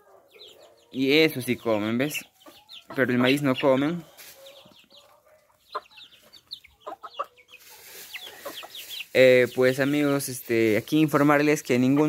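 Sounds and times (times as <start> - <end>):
chicks peeping and clucking: 0.0 - 12.0.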